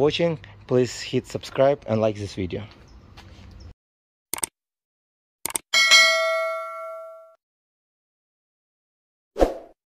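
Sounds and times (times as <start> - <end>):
bell ding: 5.8 - 7.4.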